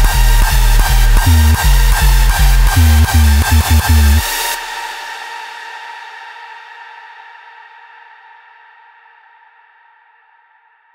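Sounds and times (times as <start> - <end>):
sustained synth chord: 0.0 - 4.3.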